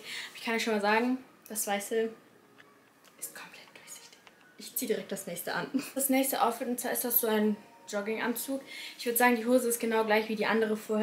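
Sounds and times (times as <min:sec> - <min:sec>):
soft whispery speech: 0:03.2 - 0:04.3
woman speaking: 0:04.6 - 0:11.0.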